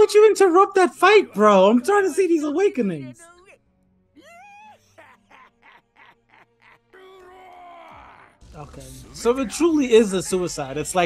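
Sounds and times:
animated character crying out: 0:04.2 - 0:08.4
staccato laugh: 0:05.0 - 0:06.9.

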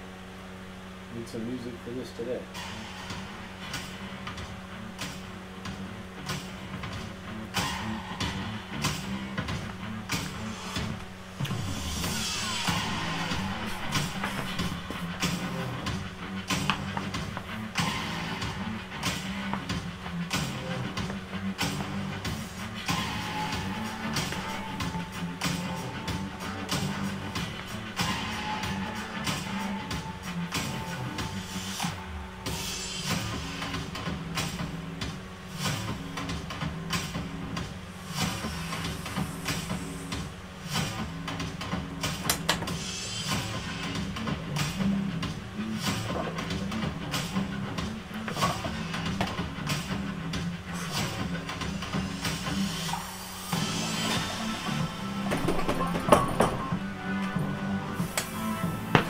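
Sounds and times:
music with steady beat: 0:02.6 - 0:59.0.

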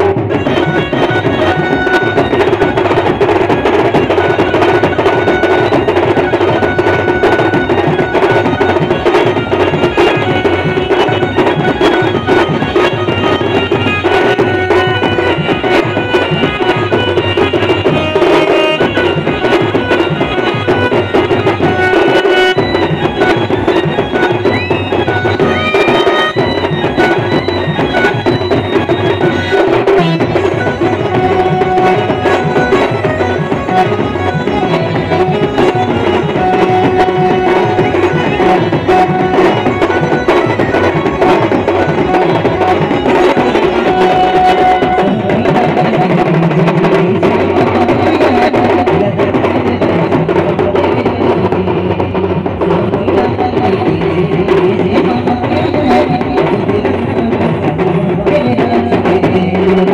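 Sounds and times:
drums and percussion: 0:00.0 - 0:59.9
sustained melody line: 0:00.0 - 0:59.9.

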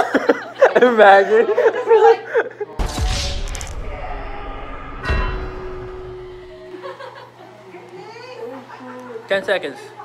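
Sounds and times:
deep booming hit: 0:02.8 - 0:06.8
held tone: 0:02.9 - 0:06.8.

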